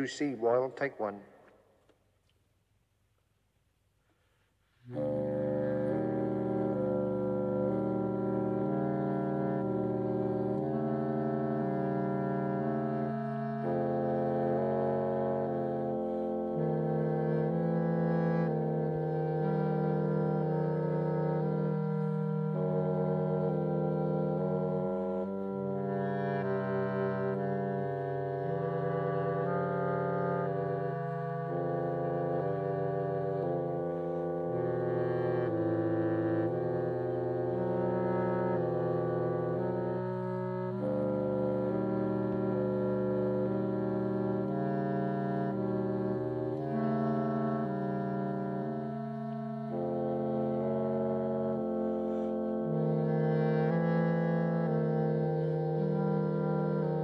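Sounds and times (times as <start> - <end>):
orchestral brass and wind chords: 0.0 - 1.2, 4.8 - 57.0.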